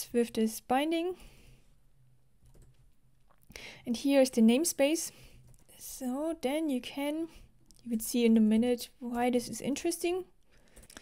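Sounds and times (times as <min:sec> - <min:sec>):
typing on computer keyboard: 0:02.4 - 0:02.9.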